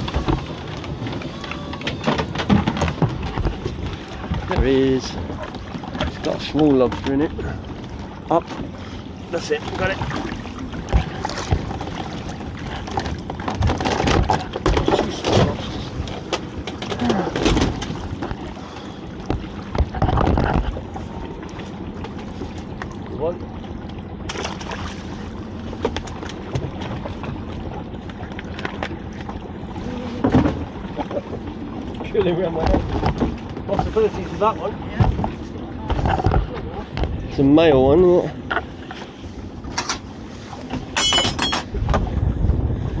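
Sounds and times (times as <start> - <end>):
water splashing: 0.0 - 42.2.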